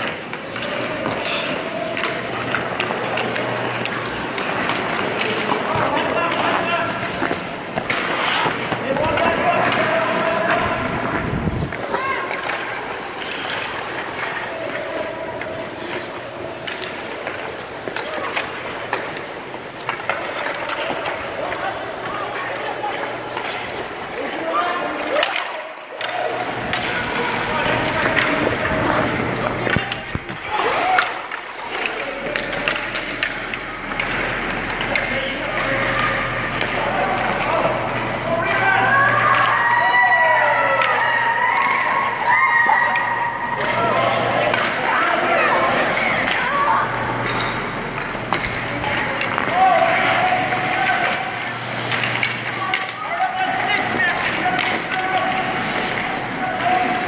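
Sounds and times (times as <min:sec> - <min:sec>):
skate blades scraping ice: 0:00.0 - 0:57.0
sticks and puck clacking: 0:00.0 - 0:57.0
children shouting and chattering: 0:08.8 - 0:19.3, 0:20.3 - 0:51.6.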